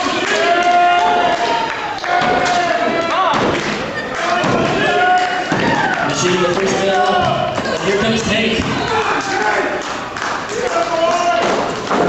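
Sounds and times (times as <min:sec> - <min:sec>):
people shouting: 0:00.0 - 0:12.0.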